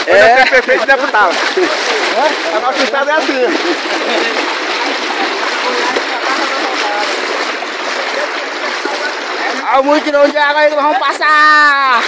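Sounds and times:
water splashing from wading: 0.0 - 12.0.

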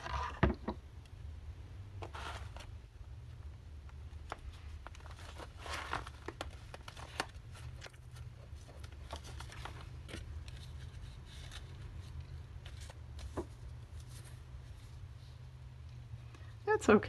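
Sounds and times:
steady low hum: 0.0 - 17.0
paper and tissue rustling: 4.2 - 15.5.

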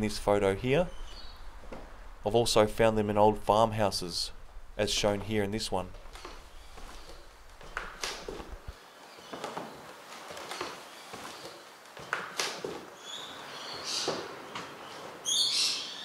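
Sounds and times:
bird chirping: 0.0 - 2.5, 6.0 - 9.8, 13.0 - 16.0
footsteps on wooden floorboards: 1.1 - 2.0, 6.0 - 12.9.

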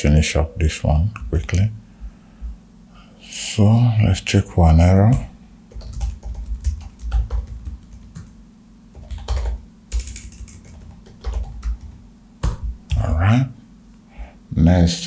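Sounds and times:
typing on computer keyboard: 5.7 - 8.4, 9.0 - 12.7.

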